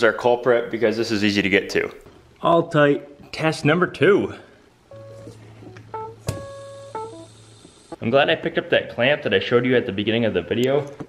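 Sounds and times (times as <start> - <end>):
held instrument notes: 4.9 - 7.5.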